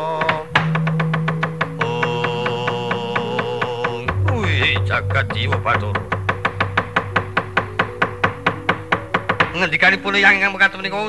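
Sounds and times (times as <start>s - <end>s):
rapid wooden clacks: 0.0s - 10.8s
held gamelan tones: 0.0s - 11.0s.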